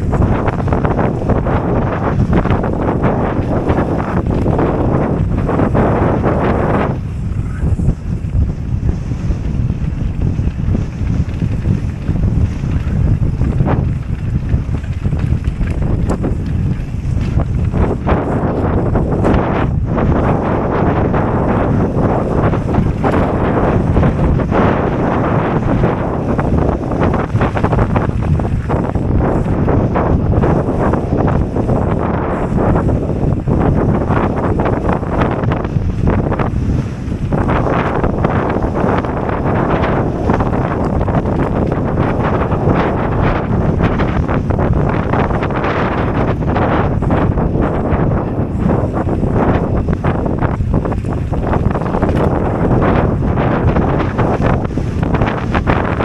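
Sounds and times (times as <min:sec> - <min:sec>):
bike knocks and rattles: 0:00.0 - 0:56.0
bike tyre rumble on dirt: 0:00.0 - 0:56.0
wind noise on microphone: 0:00.0 - 0:56.0.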